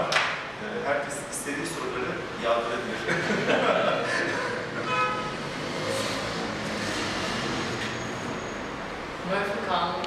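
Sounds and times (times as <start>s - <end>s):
steady background noise: 0.0s - 10.0s
man laughing: 3.0s - 4.7s.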